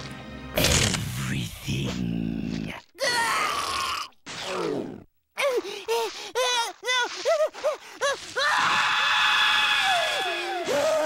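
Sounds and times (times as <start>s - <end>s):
cartoon monster groaning and wailing: 0.6s - 5.6s.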